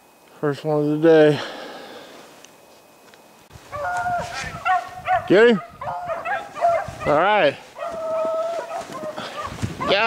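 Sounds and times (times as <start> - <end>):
low outdoor hiss: 0.0 - 10.0
hounds baying: 3.6 - 10.0.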